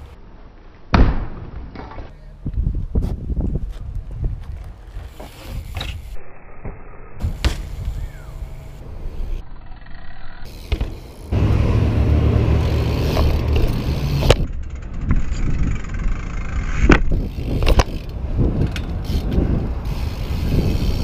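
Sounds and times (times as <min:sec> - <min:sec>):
bike rolling on concrete: 0:01.7 - 0:06.2, 0:07.2 - 0:21.0
bike knocking on pavement: 0:10.6 - 0:11.0.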